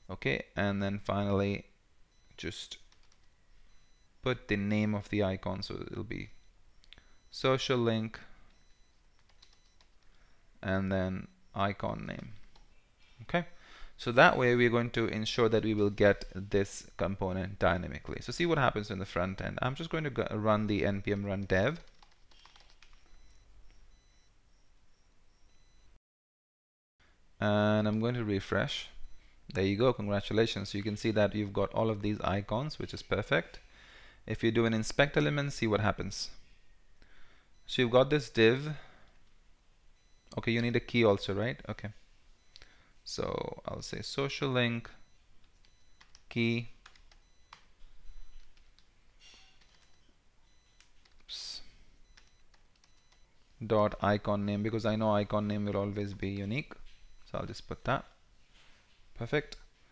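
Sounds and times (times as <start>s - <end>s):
faint low hum: 0.0s - 26.0s, 27.0s - 59.9s.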